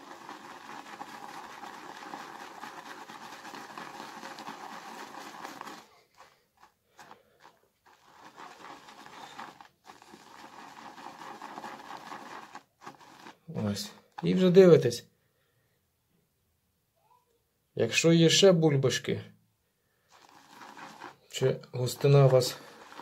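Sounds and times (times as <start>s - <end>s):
shaving brush whipping lather: 0.0s - 14.6s, 20.1s - 23.0s.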